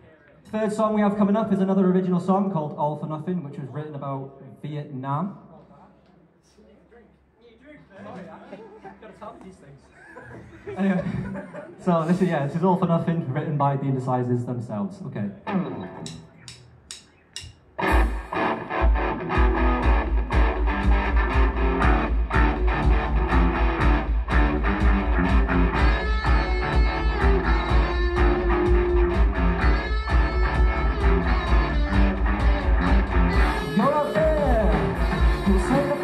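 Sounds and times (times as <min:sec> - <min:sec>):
live rock band playing: 0:15.5 - 0:16.6, 0:17.8 - 0:36.0.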